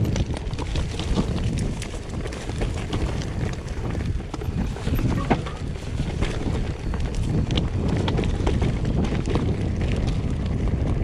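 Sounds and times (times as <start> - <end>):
bike clicks and rattles: 0.0 - 11.0
bike tyres rolling on gravel: 0.0 - 11.0
wind buffeting microphone: 0.0 - 11.0.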